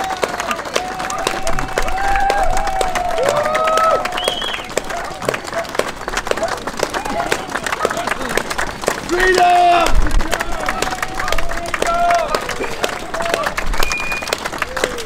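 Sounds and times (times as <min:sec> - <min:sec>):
voices shouting: 0:00.0 - 0:08.4
crowd clapping and cheering: 0:00.0 - 0:15.0.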